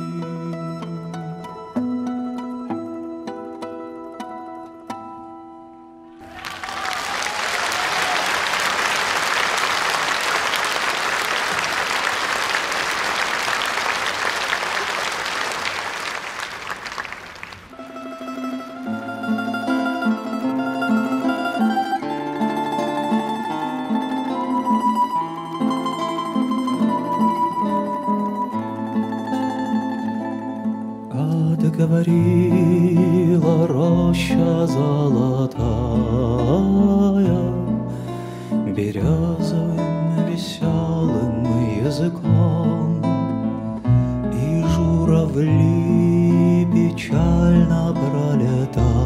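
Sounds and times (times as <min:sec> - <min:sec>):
plucked-string notes: 0:00.0 - 0:06.2, 0:17.7 - 0:49.0
audience applause: 0:06.2 - 0:18.0.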